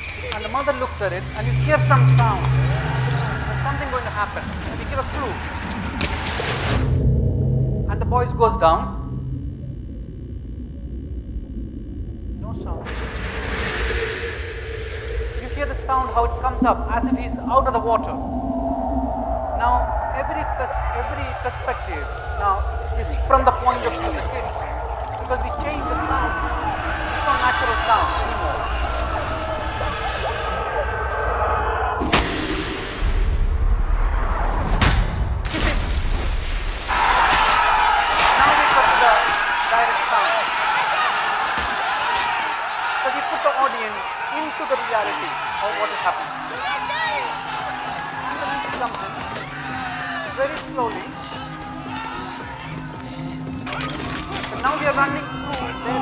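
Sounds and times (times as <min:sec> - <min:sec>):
low muffled rumble: 0:00.9 - 0:31.5
steady held tone: 0:01.1 - 0:04.6, 0:06.9 - 0:13.4, 0:14.1 - 0:31.4
loud rushing noise: 0:12.9 - 0:31.3.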